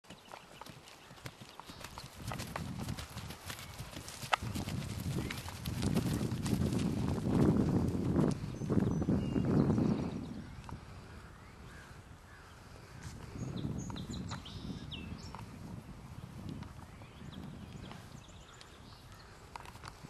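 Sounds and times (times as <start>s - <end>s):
hoofbeats on grass: 0.0s - 10.3s.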